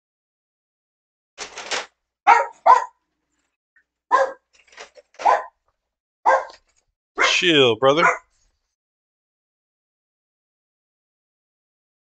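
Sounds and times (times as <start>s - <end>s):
dog barking: 2.3s - 3.0s, 4.1s - 4.5s, 5.2s - 5.6s, 6.3s - 6.6s, 7.2s - 7.4s, 8.0s - 8.4s.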